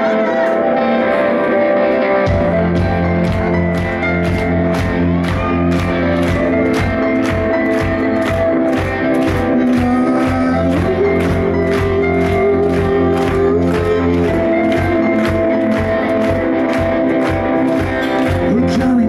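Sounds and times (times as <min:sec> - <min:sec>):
electric guitars: 0:00.0 - 0:19.0.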